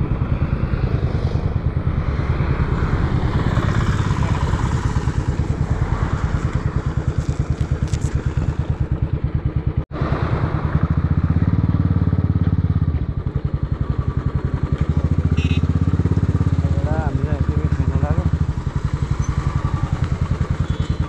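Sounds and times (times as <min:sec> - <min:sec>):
motorcycle engine running: 0:00.0 - 0:21.0
road and wind noise: 0:00.0 - 0:21.0.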